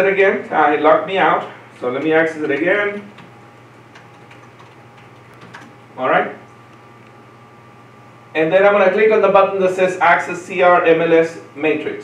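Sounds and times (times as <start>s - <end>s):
laptop keys clicking: 2.0s - 5.8s.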